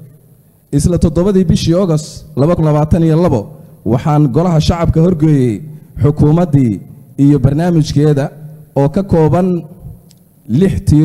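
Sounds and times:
man speaking into microphone: 0.0 - 11.0.

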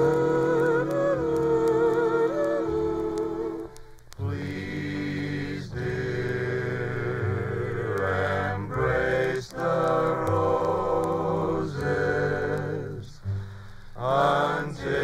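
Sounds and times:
vocal group singing harmony: 0.0 - 15.0.

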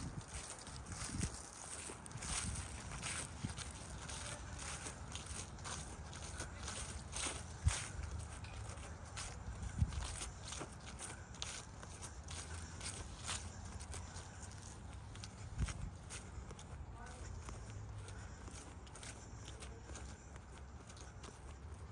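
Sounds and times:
footsteps on dry leaves: 0.0 - 21.9.

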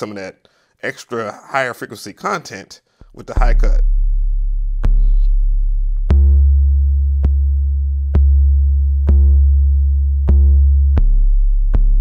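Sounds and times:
distorted bass notes: 3.1 - 12.0.

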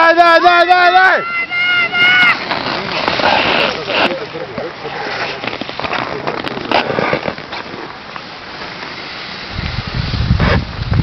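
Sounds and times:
wind hiss on microphone: 1.4 - 11.0
wind gusts buffeting microphone: 9.3 - 11.0.

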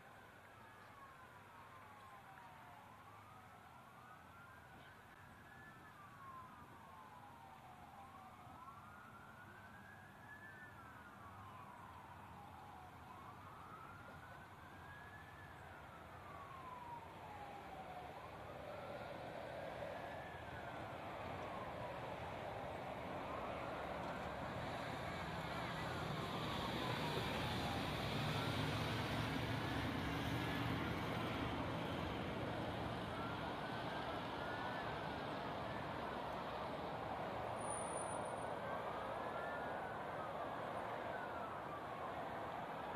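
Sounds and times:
police sirens wailing: 0.2 - 42.9.

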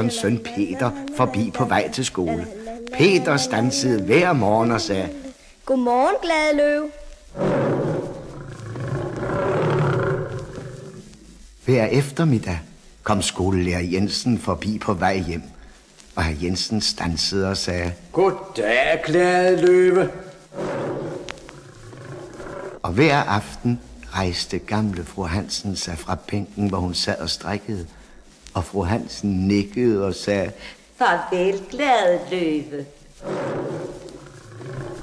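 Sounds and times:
lion roaring: 7.3 - 11.1, 20.5 - 22.9, 33.2 - 35.0.

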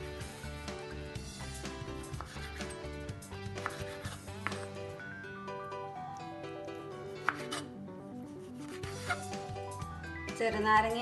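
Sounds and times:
background music: 0.0 - 11.0
knife chopping on wooden board: 2.1 - 2.7, 3.5 - 4.8, 7.2 - 7.7.

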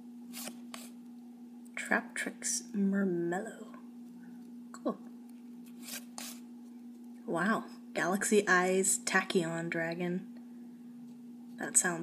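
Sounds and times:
steady low hum: 0.0 - 12.0
cards sliding papery swishes: 0.3 - 1.0, 5.7 - 6.4.

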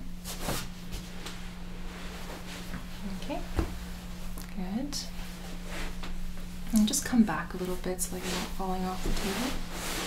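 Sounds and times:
steady low hum: 0.0 - 10.0
fabric rustling: 7.7 - 10.0.

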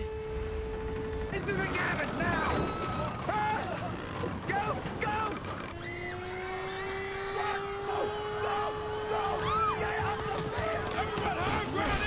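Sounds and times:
long steady tone: 0.0 - 1.3
people shouting in alarm: 5.8 - 12.0.

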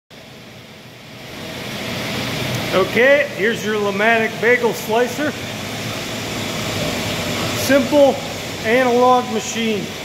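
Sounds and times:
steady mechanical hum: 0.1 - 10.0.

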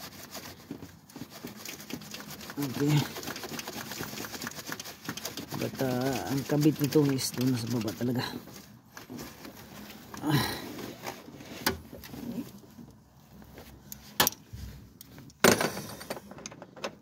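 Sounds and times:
hands and tools clicking and knocking: 15.0 - 17.0.

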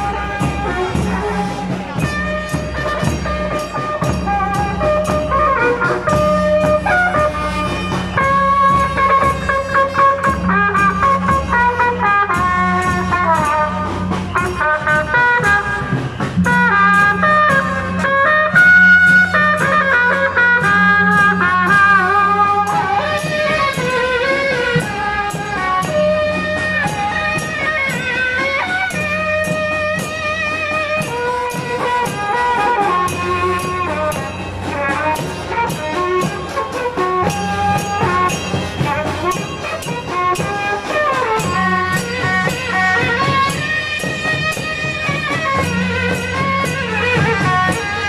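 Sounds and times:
steady drum beat: 0.0 - 48.0
trumpets playing melody: 0.0 - 48.0.

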